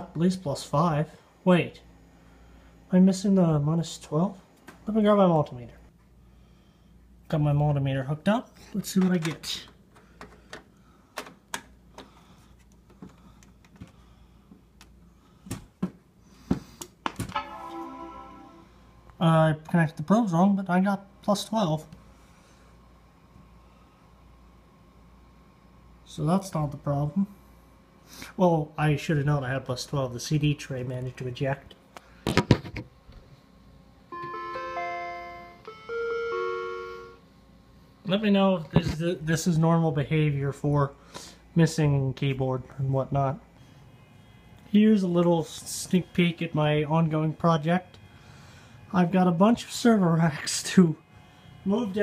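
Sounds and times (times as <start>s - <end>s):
faint steady hum: 0.0s - 52.0s
short pitched meter tone: 17.3s - 19.0s
computer error chime: 17.4s - 18.7s.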